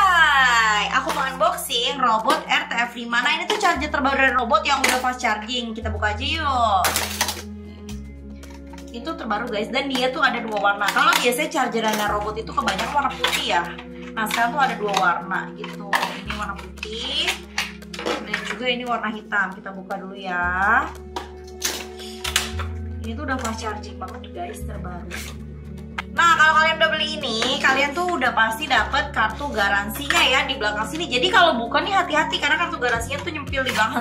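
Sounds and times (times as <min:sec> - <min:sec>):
background music: 0:00.0 - 0:34.0
knife scraping plastic packaging: 0:09.9 - 0:15.0, 0:15.6 - 0:18.6, 0:25.0 - 0:25.4.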